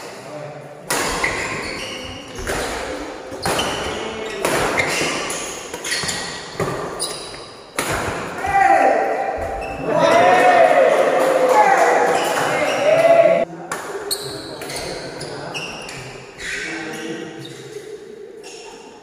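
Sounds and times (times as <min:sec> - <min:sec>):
rackets hitting shuttlecock: 0:02.4 - 0:08.5
loud shouting voices: 0:08.4 - 0:13.5.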